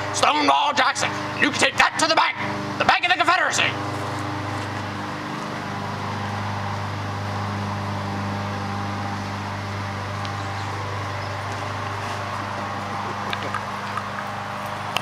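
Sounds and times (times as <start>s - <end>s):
low machine hum: 0.0s - 15.0s.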